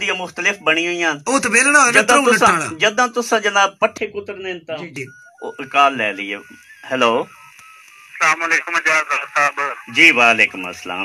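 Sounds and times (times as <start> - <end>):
faint broken telephone-line tone: 4.8 - 11.0.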